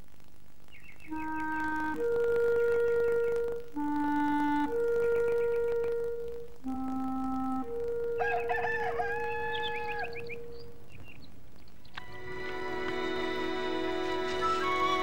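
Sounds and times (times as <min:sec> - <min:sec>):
soft flute music: 0:01.1 - 0:11.3, 0:12.0 - 0:15.0
rooster crowing: 0:08.0 - 0:10.8.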